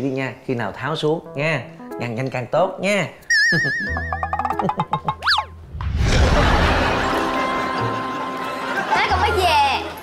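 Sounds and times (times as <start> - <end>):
quick plucked notes: 3.4 - 5.6
transition whoosh: 5.5 - 7.1.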